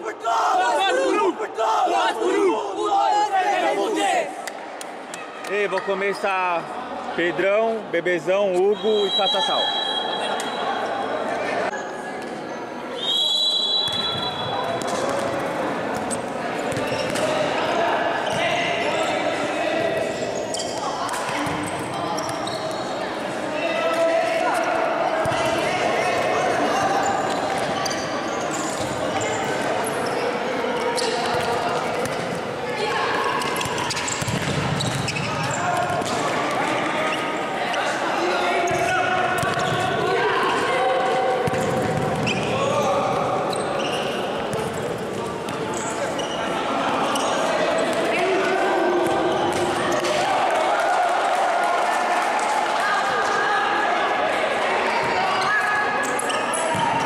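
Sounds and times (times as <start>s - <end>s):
people shouting with echo: 0.0s - 4.4s
referee's whistle: 8.6s - 10.9s, 13.0s - 14.7s
ball bouncing on wooden court: 33.5s - 36.2s.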